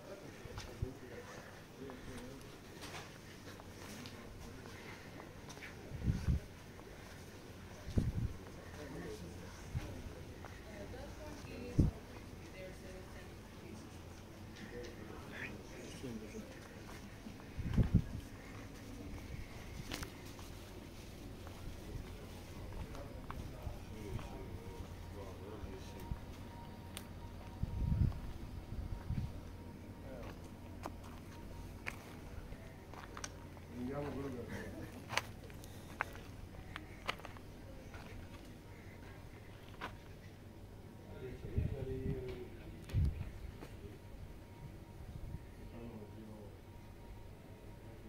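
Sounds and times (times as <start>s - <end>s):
footsteps walking: 2.6s - 8.3s, 16.5s - 25.0s, 30.2s - 34.2s, 34.8s - 38.6s
low steady rumble: 16.5s - 34.1s.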